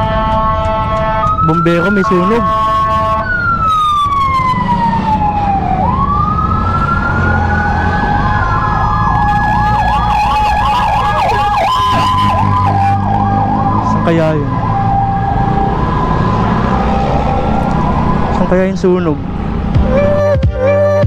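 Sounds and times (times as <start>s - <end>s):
fire truck siren: 0.0s - 21.0s
second steady siren tone: 0.0s - 21.0s.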